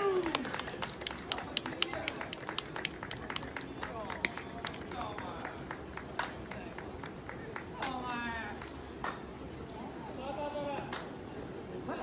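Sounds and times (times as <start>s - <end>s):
spectators clapping: 0.0s - 8.7s
faint crowd voices: 0.0s - 12.0s.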